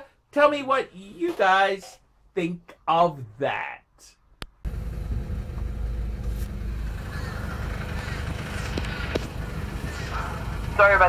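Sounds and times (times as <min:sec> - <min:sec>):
car engine and road noise: 0:04.5 - 0:11.0.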